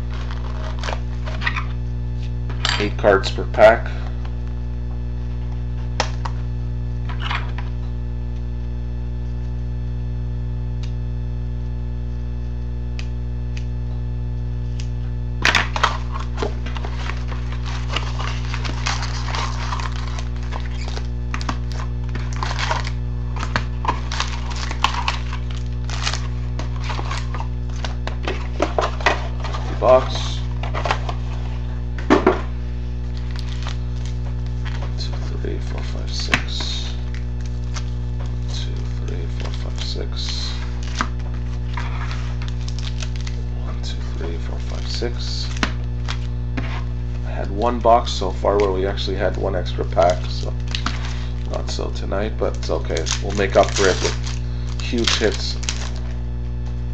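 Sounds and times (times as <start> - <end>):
card packs crinkling and clicking: 0.0 - 1.6, 5.9 - 6.4, 14.7 - 56.8
electrical hum: 0.0 - 56.9
packs stacked on wooden table: 15.4 - 32.4, 33.1 - 37.9, 48.6 - 56.0.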